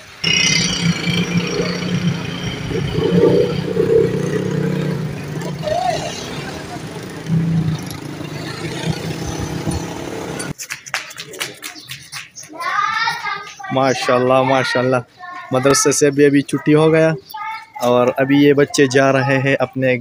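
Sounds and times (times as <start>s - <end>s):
outdoor street noise: 0.0s - 20.0s
indistinct voices: 0.2s - 10.5s
vehicle engine running: 0.2s - 10.5s.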